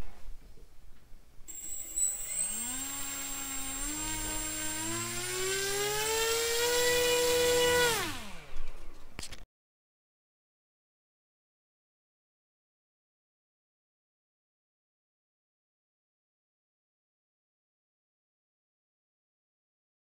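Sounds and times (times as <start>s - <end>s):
thin high-pitched whine: 1.5s - 4.8s
small electric motor whine: 1.5s - 8.9s.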